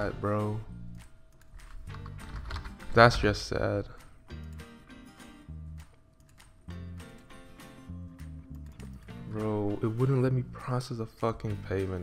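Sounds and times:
background music: 0:00.0 - 0:12.0
computer keyboard typing: 0:01.3 - 0:02.9, 0:06.2 - 0:07.3.

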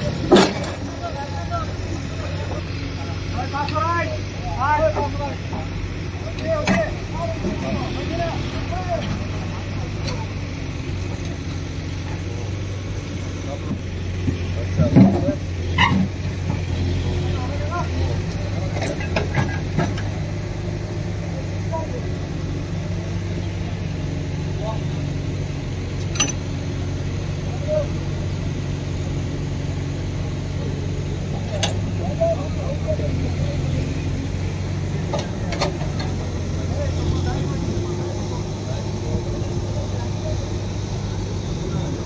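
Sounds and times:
faint voices: 0:00.0 - 0:42.0
large engine humming: 0:00.0 - 0:42.0.

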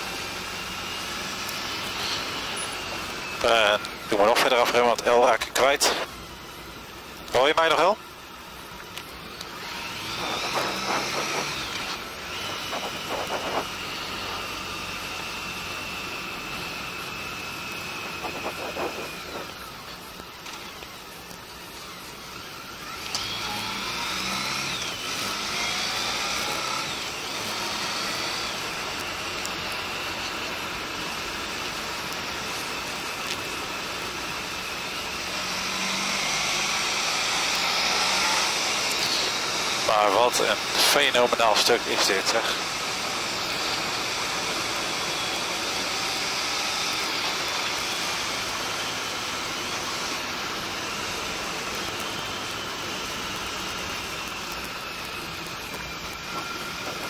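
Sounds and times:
motorcycle engine accelerating: 0:09.4 - 0:41.0
wind noise: 0:10.1 - 0:13.8, 0:18.0 - 0:19.6.

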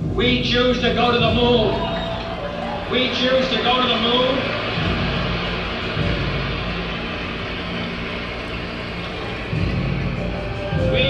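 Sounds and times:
crowd applauding and cheering: 0:00.3 - 0:11.0.

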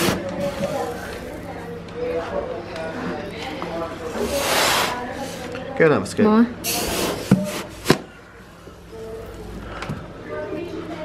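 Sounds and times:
indistinct talking: 0:00.0 - 0:11.0.

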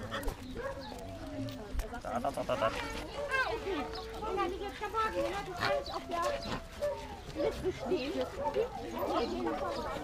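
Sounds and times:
puppies yelping: 0:00.0 - 0:01.7, 0:02.4 - 0:10.0
people chattering: 0:00.0 - 0:10.0.

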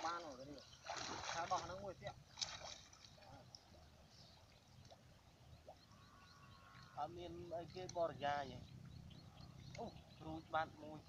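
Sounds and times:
water sloshing and splashing: 0:00.0 - 0:05.3
voices: 0:09.4 - 0:11.0.

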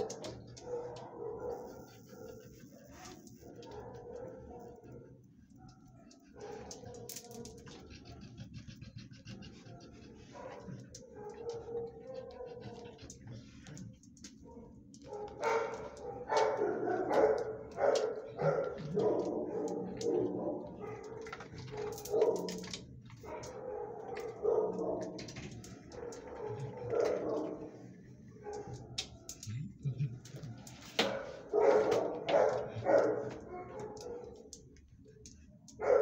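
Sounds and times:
dog barking: 0:00.0 - 0:08.2, 0:09.6 - 0:13.1, 0:14.4 - 0:29.2, 0:31.0 - 0:34.5, 0:35.8 - 0:36.0.

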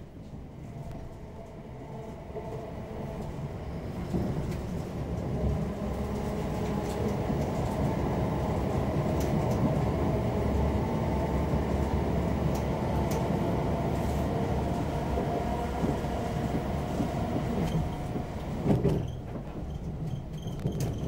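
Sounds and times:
train wheels rumbling on track: 0:00.0 - 0:21.0.

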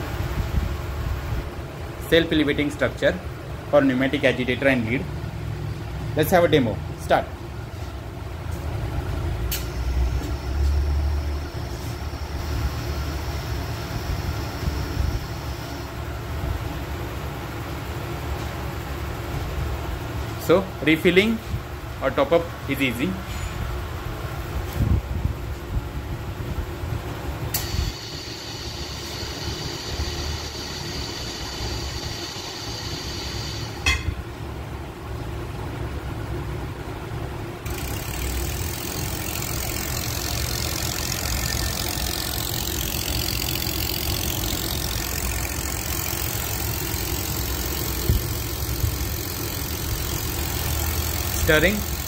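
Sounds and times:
pneumatic air motor running: 0:07.7 - 0:16.9, 0:27.4 - 0:34.1, 0:37.6 - 0:52.0
quiet steady machine tone: 0:09.2 - 0:19.1, 0:27.5 - 0:35.4, 0:37.6 - 0:52.0
sharp click: 0:09.4 - 0:10.4, 0:27.5 - 0:27.9
hiss of exhaust air: 0:09.4 - 0:16.0, 0:27.5 - 0:33.8.

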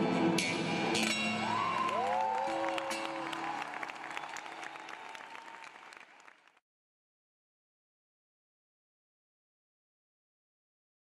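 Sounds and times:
audience cheering: 0:01.3 - 0:06.6
audience applauding: 0:01.4 - 0:06.6.

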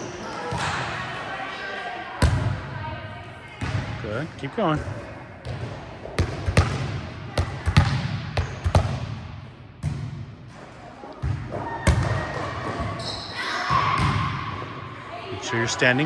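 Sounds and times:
volleyballs smacking gym floor: 0:05.4 - 0:09.2.

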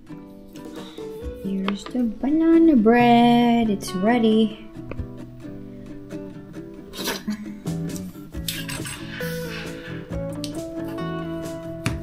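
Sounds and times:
background music: 0:00.0 - 0:12.0
utensil scraping metal pan: 0:08.5 - 0:10.1.

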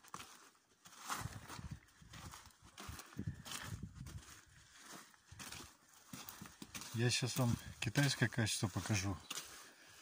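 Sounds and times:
footsteps on sand: 0:00.0 - 0:10.0.

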